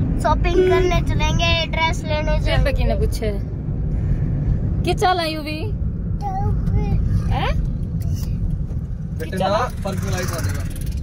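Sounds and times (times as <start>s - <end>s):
car cabin road and engine rumble: 0.0s - 11.0s.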